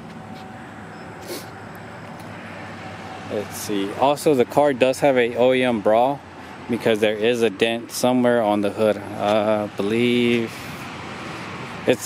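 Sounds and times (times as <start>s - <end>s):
short breathy hiss: 1.2s - 1.6s.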